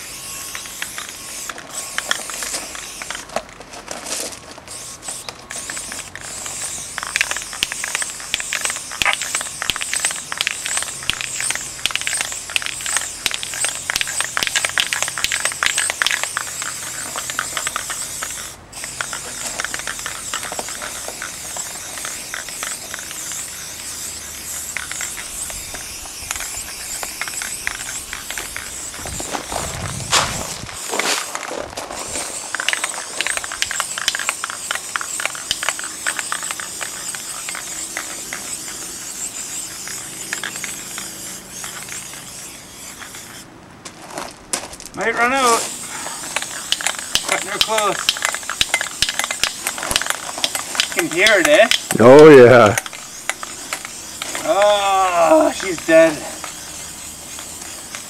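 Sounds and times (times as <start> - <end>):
aerosol spray can hissing: 4.7 - 31.3, 32.3 - 43.4, 45.4 - 58.0.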